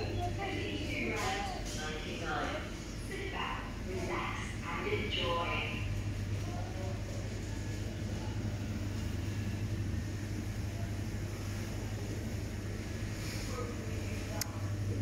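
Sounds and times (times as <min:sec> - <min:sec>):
faint distant voices: 0:00.0 - 0:09.6, 0:10.3 - 0:15.0
low mechanical hum: 0:00.0 - 0:15.0.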